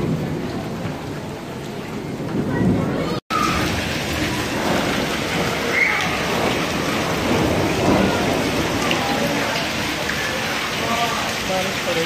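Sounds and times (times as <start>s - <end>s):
hail pattering on hard surfaces: 0.0s - 12.0s.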